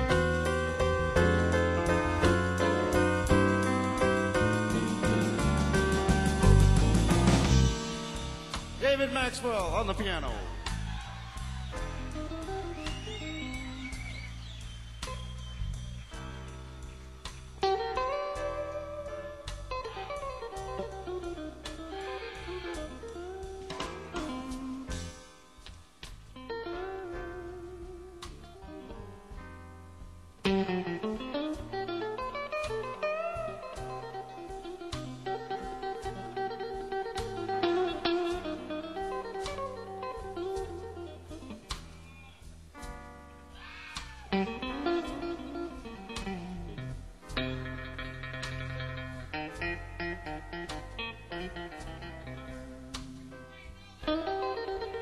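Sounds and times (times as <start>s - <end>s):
bass and drums: 0.0s - 43.2s, 44.0s - 53.4s
electric guitar solo: 8.7s - 14.4s, 17.6s - 25.2s, 26.4s - 29.4s, 30.4s - 42.4s, 43.6s - 55.0s.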